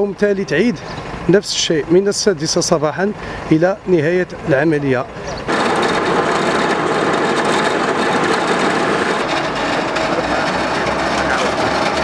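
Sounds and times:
garbage truck engine running: 0.0 - 12.0
truck loading machinery: 3.2 - 12.0.

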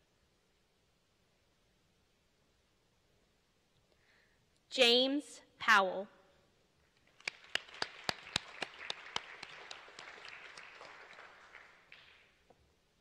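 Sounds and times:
sharp individual claps: 7.0 - 12.6
audience applauding: 7.1 - 12.4.

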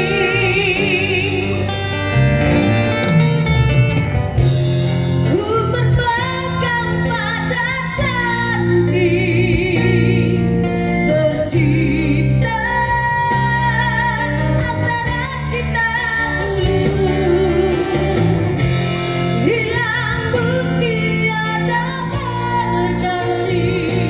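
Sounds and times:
woman singing through pa speaker: 0.0 - 1.8, 5.3 - 18.5, 19.4 - 24.0
live band bass and drums: 0.0 - 24.0.

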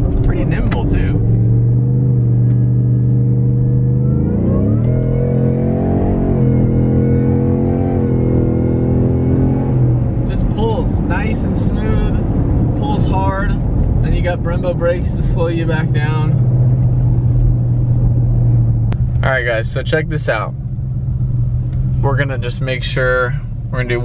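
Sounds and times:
truck engine drone from inside: 0.0 - 24.0.

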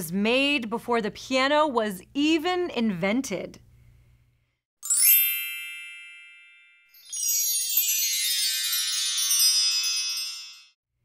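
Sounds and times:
bright shimmering chime: 4.8 - 10.8.

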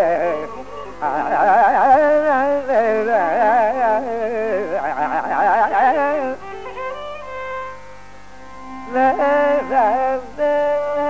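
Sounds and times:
violin following melody: 0.0 - 3.0, 5.9 - 11.0
man singing classical vocals: 0.0 - 6.5, 8.9 - 11.0.

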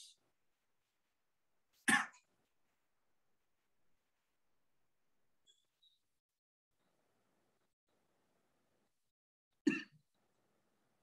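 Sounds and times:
person coughing: 1.9 - 2.2, 9.7 - 10.0.

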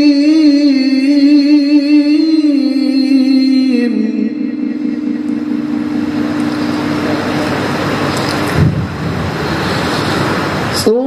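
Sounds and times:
person reciting a long low note: 0.0 - 9.6.

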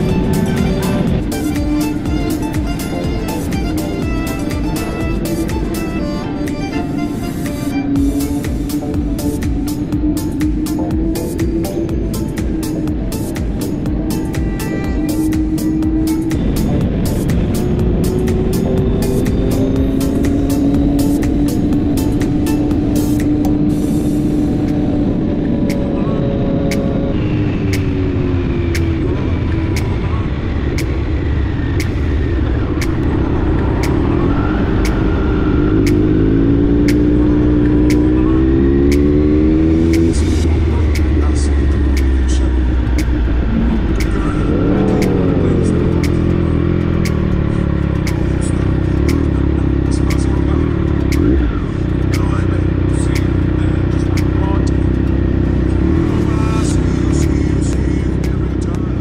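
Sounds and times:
motorcycle engine revving: 0.0 - 59.0
wind and road noise: 0.0 - 59.0.

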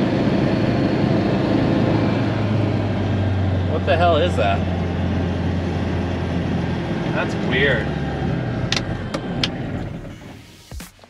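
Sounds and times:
propeller airplane engine drone: 0.0 - 11.0.

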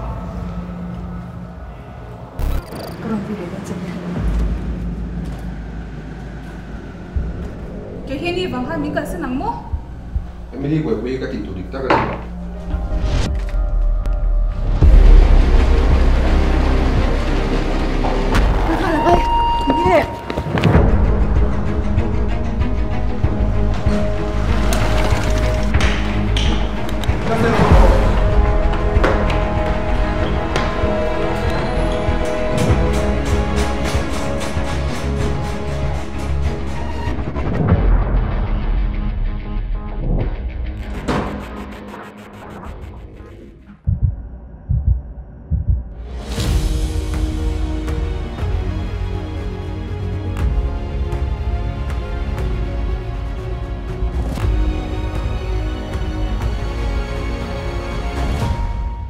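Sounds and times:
deep rumbling drone: 0.0 - 59.0
heartbeat double thumps: 9.6 - 10.6, 42.6 - 47.4.

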